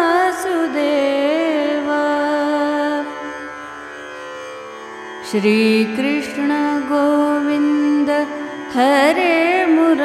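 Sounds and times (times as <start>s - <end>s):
woman singing ornamented line: 0.0s - 3.3s, 5.3s - 10.0s
devotional chant with harmonium: 0.0s - 3.9s, 5.2s - 10.0s.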